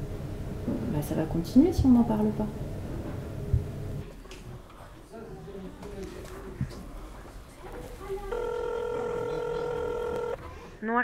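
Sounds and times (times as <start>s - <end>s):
woman speaking: 1.0s - 2.6s
telephone ringback tone: 8.3s - 10.4s.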